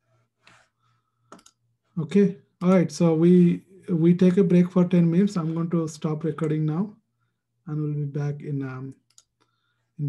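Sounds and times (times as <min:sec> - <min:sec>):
faint clicks: 0:08.9 - 0:09.6.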